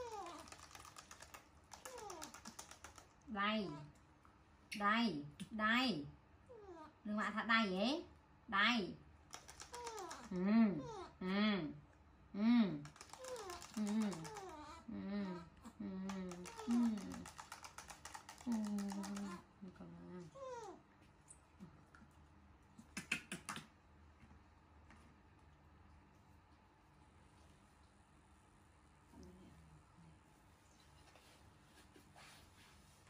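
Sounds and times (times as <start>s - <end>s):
baby monkey whimpering: 0.0s - 0.6s, 1.8s - 2.5s, 9.6s - 11.1s
baby bottle rattling when shaken: 0.0s - 3.1s, 9.3s - 10.3s, 12.9s - 14.6s, 16.3s - 19.4s.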